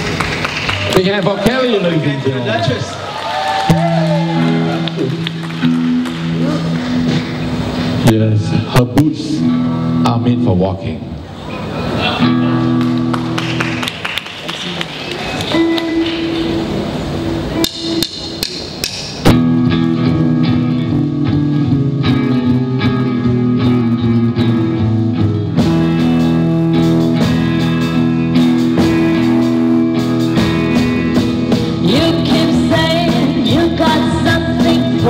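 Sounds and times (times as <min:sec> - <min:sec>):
live band sustained chords: 0:03.1 - 0:35.0
drumsticks clicking together: 0:17.6 - 0:19.2.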